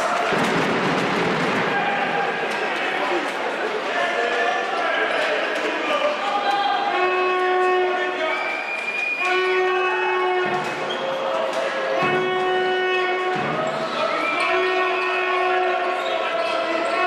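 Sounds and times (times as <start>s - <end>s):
crowd voices: 0.0s - 17.0s.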